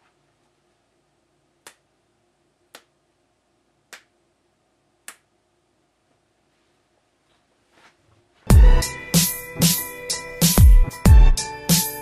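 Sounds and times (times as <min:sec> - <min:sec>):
fingers snapping: 0:01.6 - 0:01.9, 0:02.7 - 0:03.0, 0:03.9 - 0:04.1, 0:05.0 - 0:05.3.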